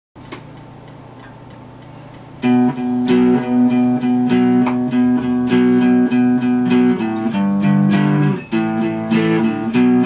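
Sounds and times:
guitar amplifier hum: 0:00.2 - 0:10.0.

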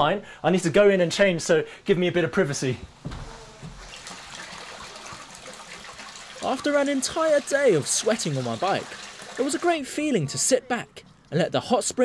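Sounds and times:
water pouring into pool: 0:03.6 - 0:09.9.

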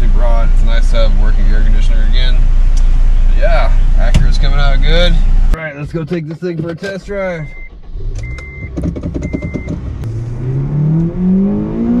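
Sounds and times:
car engine accelerating: 0:07.4 - 0:12.0.

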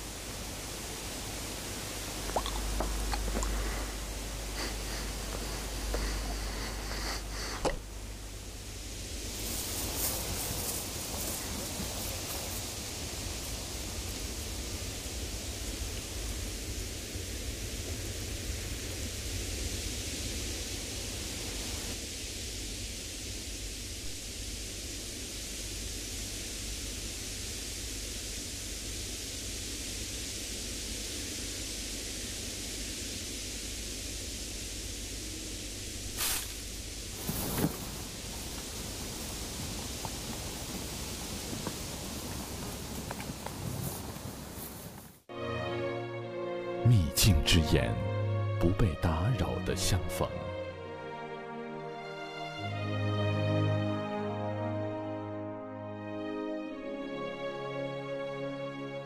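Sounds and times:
field recording hiss: 0:00.0 - 0:59.0.

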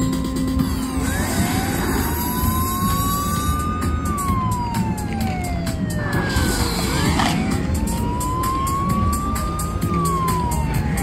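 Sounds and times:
slot machine siren wail: 0:00.6 - 0:11.0.

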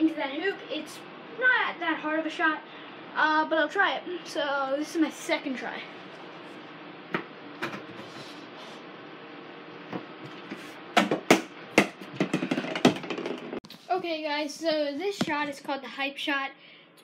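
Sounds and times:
ball knocking on wooden door: 0:11.0 - 0:13.6.

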